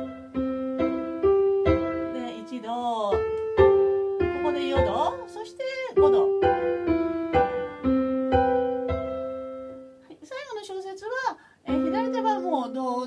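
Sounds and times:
electronic organ chords: 6.0s - 9.9s.

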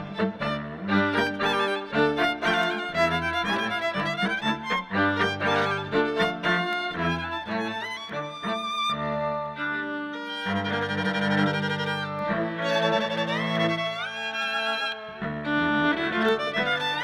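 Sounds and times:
violin melody with sliding notes: 0.0s - 17.0s.

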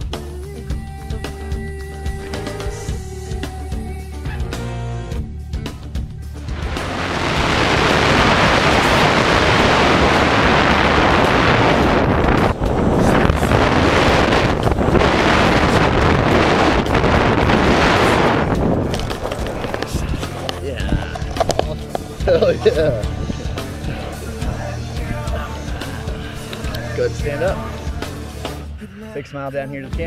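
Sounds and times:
background music: 0.0s - 30.0s
wind rushing over microphone: 6.4s - 28.0s.

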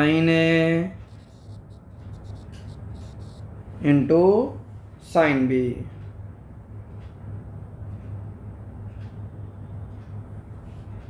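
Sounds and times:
man talking: 0.0s - 1.0s
stylus scratching on tablet screen: 0.0s - 3.5s.

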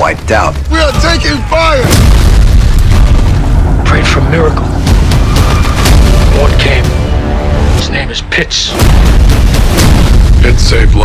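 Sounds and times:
explosion with low rumble: 1.8s - 6.9s, 8.8s - 11.0s.

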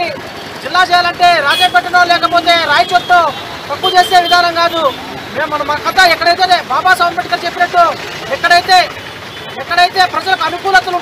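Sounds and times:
man speaking into a microphone: 0.0s - 11.0s.

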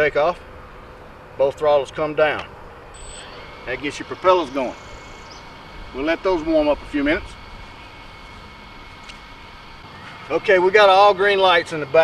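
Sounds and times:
drone propellers whirring: 0.2s - 12.0s.

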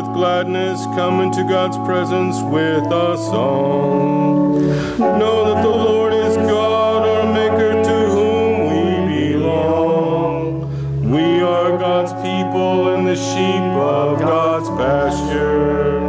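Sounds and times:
man singing: 0.0s - 16.0s
piano accompaniment: 0.0s - 16.0s.

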